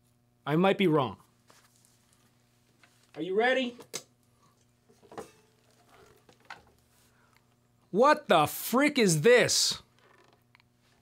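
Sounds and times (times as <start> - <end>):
guitar handling knocks and rustles: 4.9 - 6.8.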